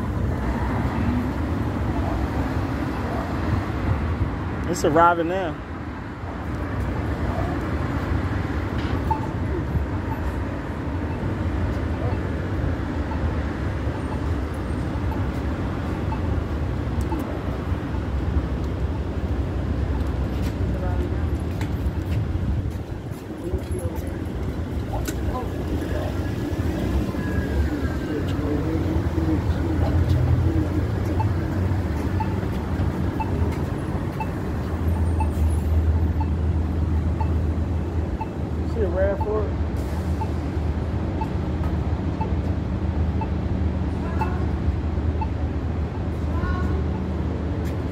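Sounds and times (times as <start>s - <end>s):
city street traffic rumble: 0.0s - 47.9s
faint voices: 23.1s - 33.7s.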